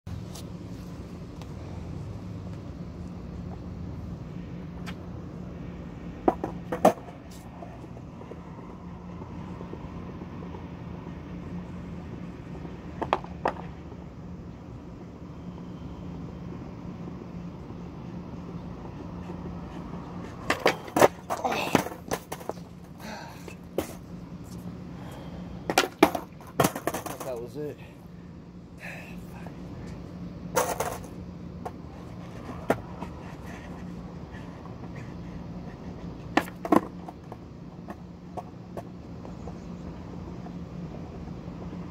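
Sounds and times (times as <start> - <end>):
skateboard wheels rolling: 0.1 - 27.4, 29.1 - 41.9
steady low hum: 0.1 - 41.9
skateboard clacks on concrete: 6.2 - 7.7, 13.0 - 13.7, 20.4 - 22.7, 25.7 - 27.4, 30.6 - 33.9, 36.2 - 39.6.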